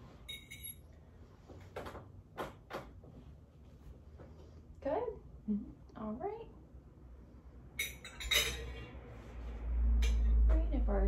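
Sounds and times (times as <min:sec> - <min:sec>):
metal spoon clinking in bowl: 0:00.3 - 0:00.8, 0:07.8 - 0:08.9.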